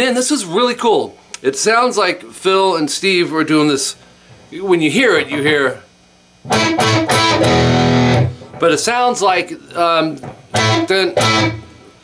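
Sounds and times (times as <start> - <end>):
electric guitar strummed: 6.4 - 8.6, 10.5 - 11.8.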